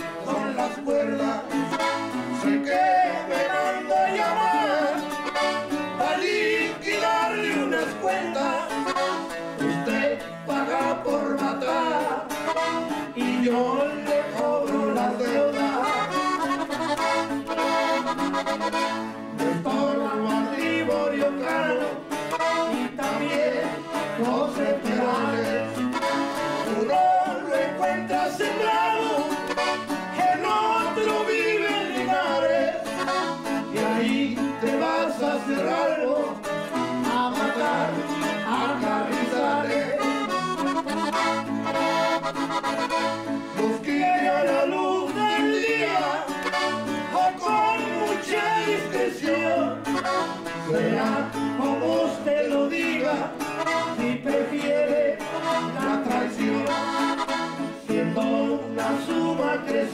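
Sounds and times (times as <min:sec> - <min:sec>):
men singing together: 0:00.0 - 0:09.0, 0:09.6 - 0:16.3, 0:19.3 - 0:40.4, 0:43.4 - 0:59.9
accordion and guitar playing: 0:00.0 - 0:59.9.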